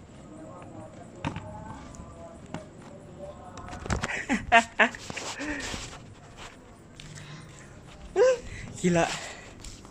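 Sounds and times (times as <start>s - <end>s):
faint indistinct voices: 0.0s - 9.8s.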